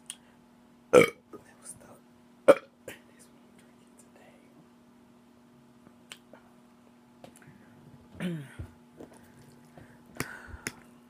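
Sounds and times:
woman clearing her throat: 8.2s - 8.7s.

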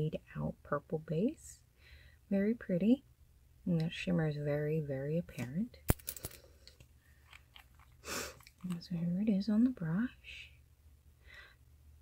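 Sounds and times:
faint crackles and ticks: 6.6s - 9.8s.

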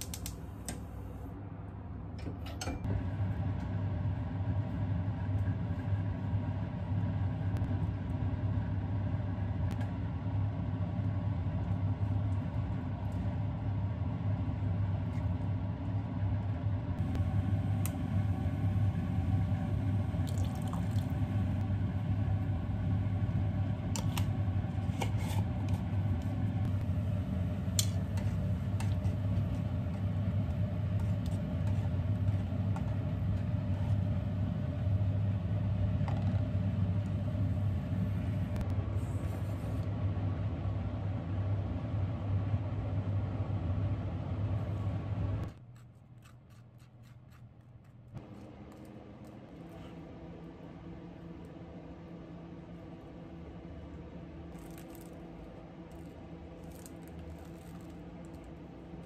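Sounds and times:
steady low rumble: 2.8s - 45.6s.

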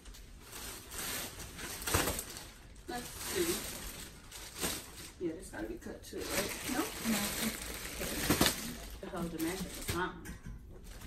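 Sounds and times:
plastic wrapping crinkling: 0.0s - 10.2s.

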